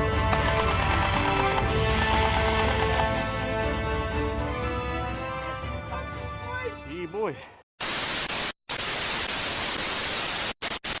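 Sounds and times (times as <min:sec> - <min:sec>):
loud static hiss: 0:07.8 - 0:11.0.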